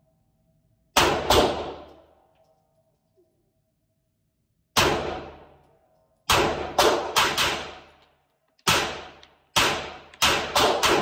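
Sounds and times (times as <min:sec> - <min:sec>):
pistol shots echoing: 0:01.0 - 0:02.1, 0:04.8 - 0:05.6, 0:06.3 - 0:08.0, 0:08.6 - 0:11.0.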